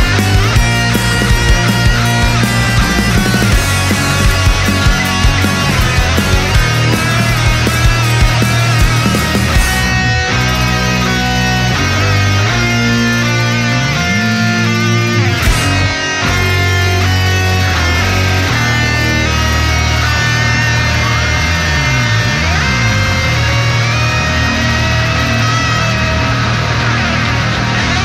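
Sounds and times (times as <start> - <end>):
bass guitar: 0.0 - 28.0
heavy rock electric guitars: 0.0 - 28.0.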